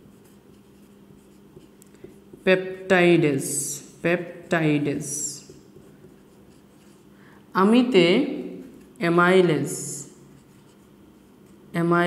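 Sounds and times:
marker writing on whiteboard: 0.0s - 7.1s, 8.6s - 11.7s.

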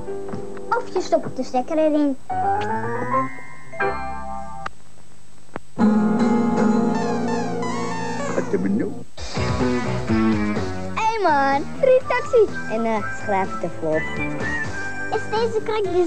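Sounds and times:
up-tempo tune with guitar: 5.8s - 16.0s.

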